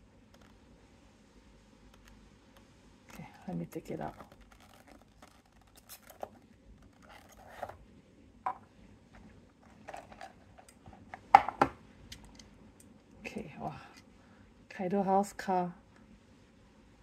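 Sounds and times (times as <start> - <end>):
cardboard box scraping and rustling: 7.0 - 7.8.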